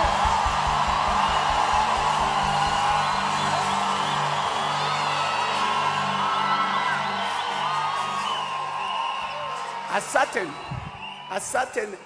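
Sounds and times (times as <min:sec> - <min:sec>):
fast low drum beat: 0:00.0 - 0:03.6
congregation cheering: 0:00.0 - 0:12.0.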